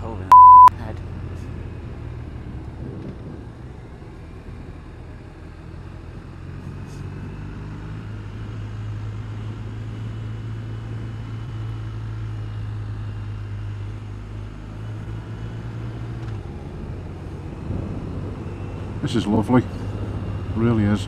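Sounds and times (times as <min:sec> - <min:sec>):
wind and road noise: 0:00.0 - 0:21.0.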